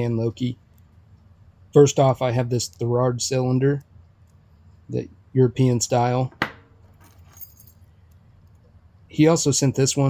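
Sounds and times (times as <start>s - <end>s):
keys jingling on a key ring: 6.9s - 7.8s.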